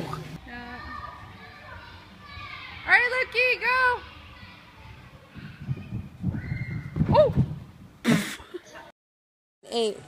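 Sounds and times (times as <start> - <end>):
faint children's voices: 0.5 - 3.0, 3.8 - 6.9.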